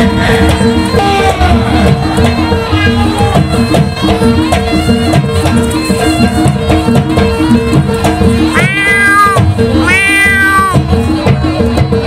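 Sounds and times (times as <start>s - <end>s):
gamelan music with drums: 0.0s - 12.0s
long meow-like calls: 8.5s - 10.8s.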